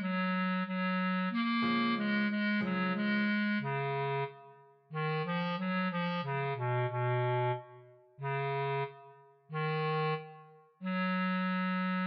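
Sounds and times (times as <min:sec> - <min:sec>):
bass clarinet melody: 0:00.0 - 0:12.0.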